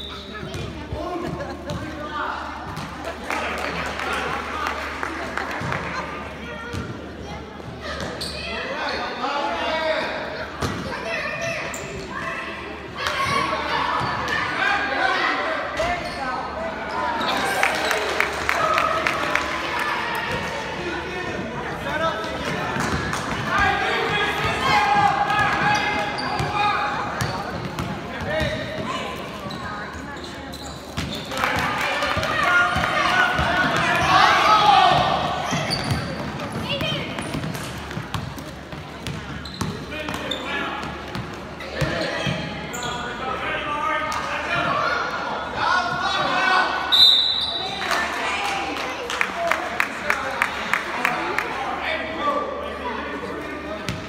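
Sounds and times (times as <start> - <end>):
voices of players and spectators: 0.0 - 54.0.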